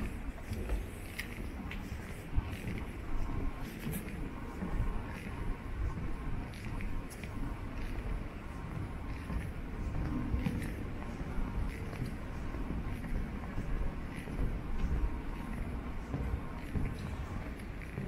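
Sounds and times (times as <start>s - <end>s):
footsteps on parquet floor: 0.0s - 18.0s.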